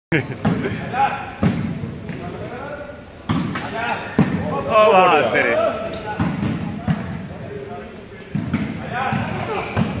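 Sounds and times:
volleyball hits echoing: 0.3 - 2.4, 3.2 - 4.9, 6.1 - 7.5, 8.2 - 10.0.

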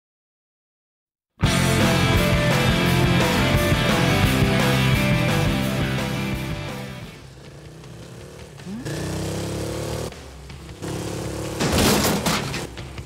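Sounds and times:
rock music: 1.4 - 7.3.

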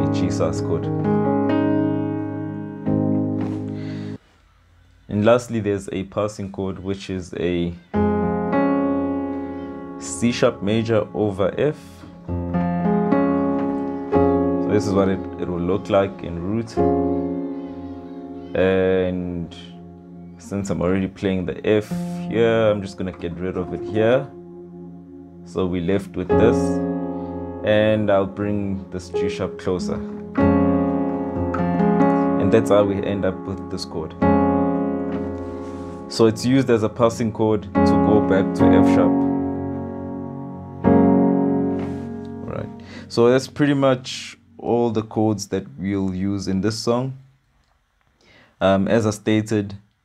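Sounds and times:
piano chord ringing: 0.0 - 4.2, 7.8 - 45.1.

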